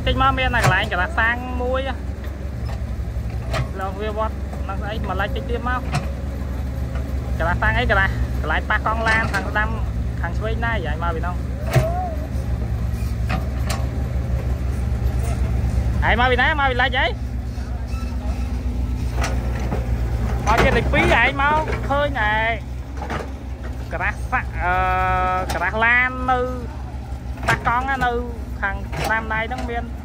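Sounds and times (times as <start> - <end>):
excavator diesel engine running: 0.0 - 30.0.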